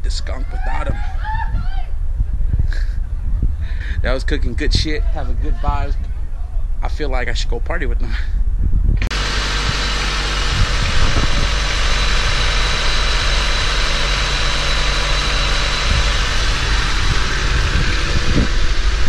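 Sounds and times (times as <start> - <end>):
car engine idling: 9.1 - 19.0.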